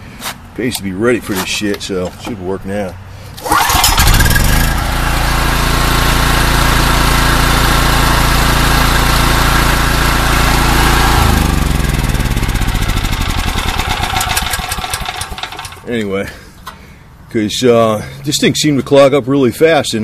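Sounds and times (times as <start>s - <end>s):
generator engine running: 3.2s - 17.0s
engine winding down: 3.4s - 15.9s.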